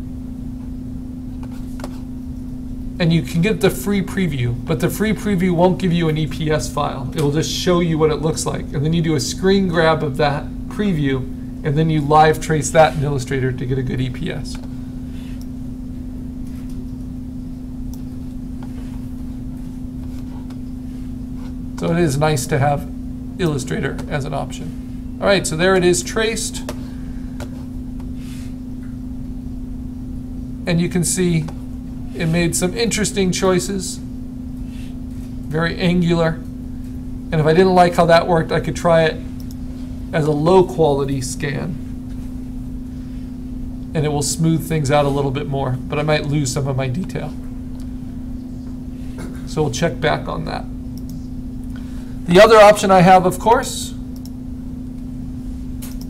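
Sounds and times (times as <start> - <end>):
low background hum: 0.0 - 56.0
low rumble and hiss: 0.0 - 56.0.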